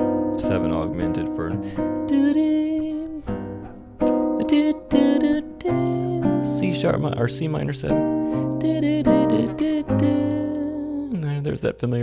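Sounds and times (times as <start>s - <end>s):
jazz guitar chords and notes: 0.0s - 11.4s.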